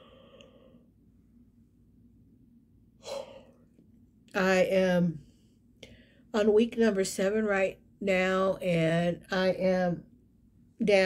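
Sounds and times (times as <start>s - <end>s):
woman yawning: 3.0s - 3.6s.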